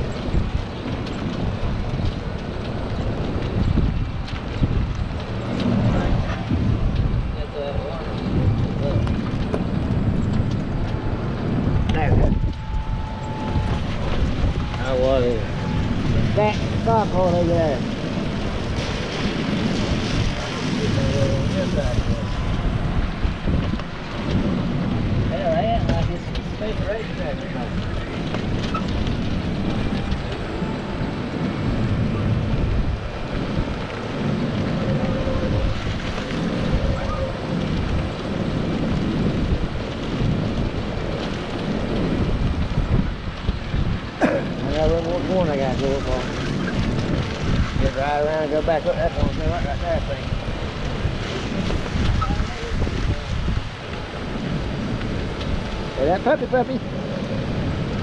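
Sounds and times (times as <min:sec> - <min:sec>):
golf cart rolling on pavement: 0:00.0 - 0:58.0
wind buffeting microphone: 0:00.0 - 0:58.0.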